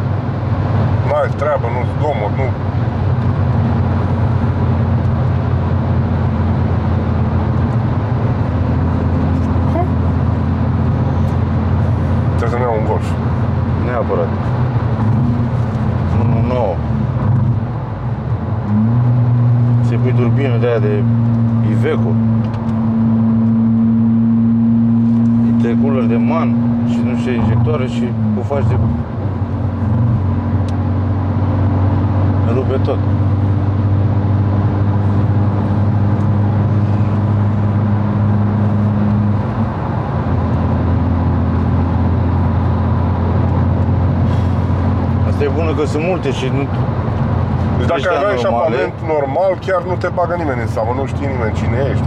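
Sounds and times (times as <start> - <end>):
car engine from inside cabin: 0.0 - 52.0
road and tyre noise: 0.0 - 52.0.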